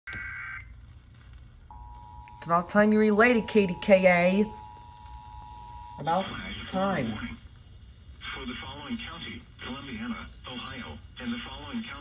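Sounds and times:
low speaker hum: 0.7s - 12.0s
two-tone attention signal: 1.7s - 6.2s
high two-tone data warble: 1.7s - 7.2s.

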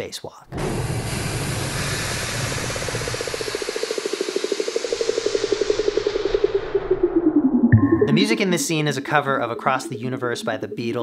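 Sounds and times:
hiss of rushing air: 0.6s - 6.5s.

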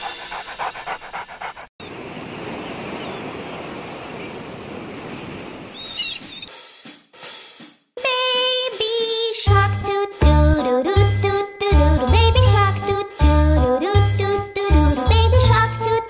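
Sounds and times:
sea waves rushing: 1.8s - 5.8s
drum and cymbal hits: 6.5s - 8.9s
children's song: 8.0s - 16.0s.

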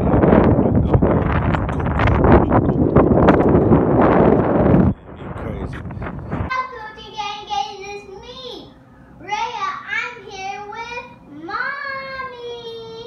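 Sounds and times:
wind buffeting microphone: 0.0s - 6.5s
voices: 0.0s - 13.0s.

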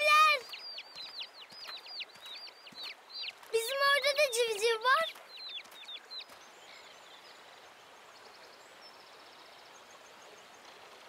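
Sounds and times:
soft birdsong: 0.0s - 11.0s
chicks peeping: 0.2s - 4.2s.

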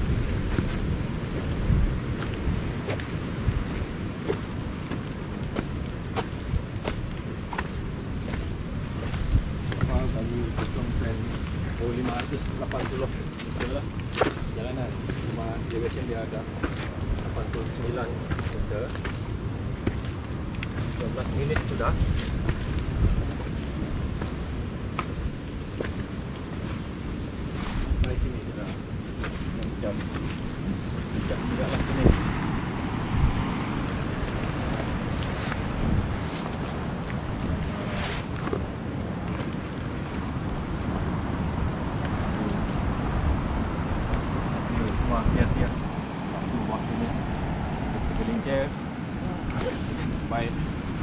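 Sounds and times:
footsteps on rocky leafy trail: 0.0s - 47.7s, 48.4s - 51.0s
wind rumble on microphone: 0.0s - 51.0s.

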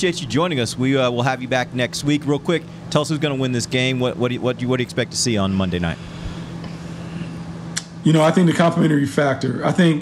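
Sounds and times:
low hum with hiss: 0.0s - 10.0s
sharp click: 7.8s - 8.0s.

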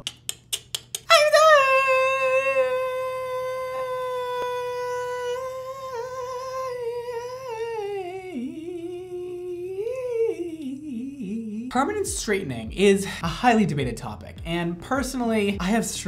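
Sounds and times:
man holding a high vocal note: 1.1s - 11.2s.

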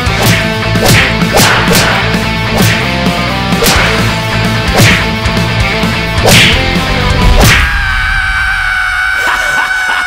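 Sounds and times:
distorted guitars and drums: 0.0s - 9.2s.

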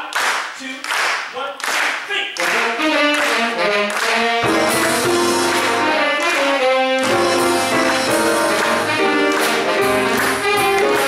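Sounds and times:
clap-like hits: 0.0s - 11.0s
horns holding notes: 2.5s - 11.0s
jazz big band: 2.6s - 11.0s.

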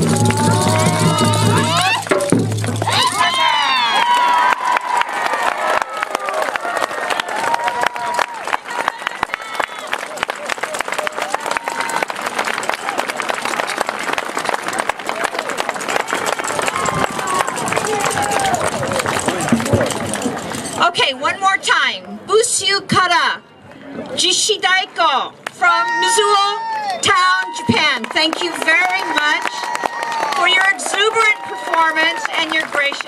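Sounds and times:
audience clapping: 0.0s - 1.2s, 1.8s - 20.7s, 27.4s - 33.0s
people shouting and cheering: 0.0s - 13.3s, 14.6s - 20.7s, 25.5s - 33.0s.

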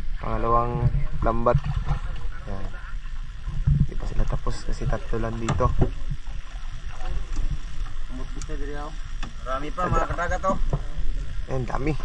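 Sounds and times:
wind rumble on microphone: 0.0s - 8.4s.

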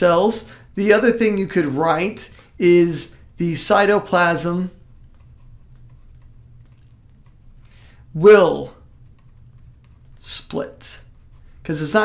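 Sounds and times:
steady low hum: 0.0s - 12.0s
stylus writing on tablet: 0.8s - 12.0s.

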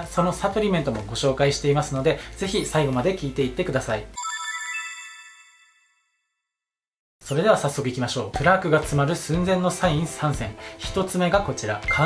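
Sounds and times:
bright electronic chime: 2.6s - 3.4s, 4.2s - 6.2s.

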